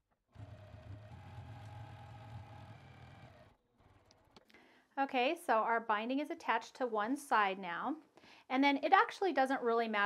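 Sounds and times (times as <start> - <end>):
sewing machine stitching: 0.4 - 4.2.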